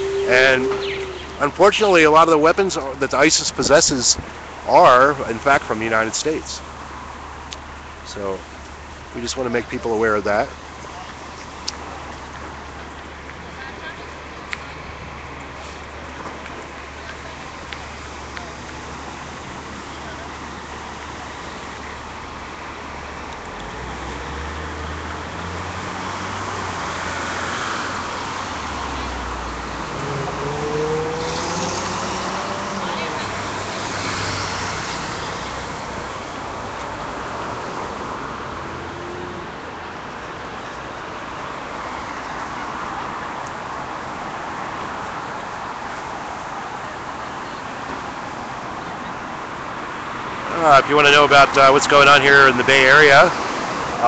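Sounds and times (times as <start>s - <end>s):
heavy engine rumble: 0.0s - 3.8s
motor vehicles passing: 0.0s - 54.0s.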